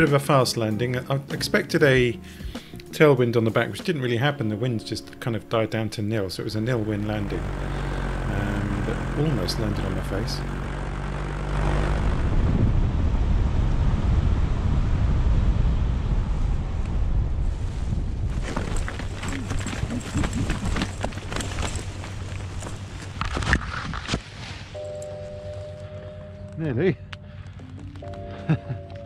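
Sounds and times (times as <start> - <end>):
soft music tones: 0.0 - 10.5, 24.8 - 29.0
wind buffeting microphone: 10.9 - 24.1.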